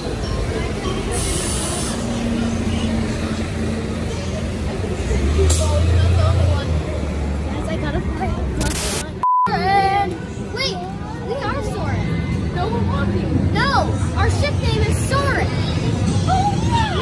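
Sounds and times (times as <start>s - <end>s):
faint voices of passers-by: 0.0s - 17.0s
low rumble of passing traffic: 0.0s - 17.0s
traffic noise: 0.0s - 17.0s.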